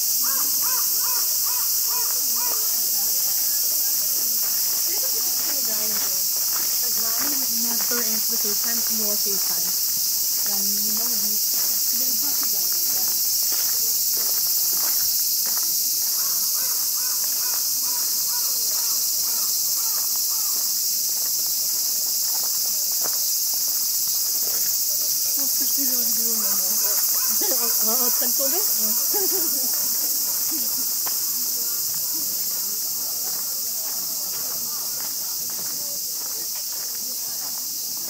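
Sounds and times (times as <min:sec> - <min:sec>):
cicadas droning: 0:00.0 - 0:38.0.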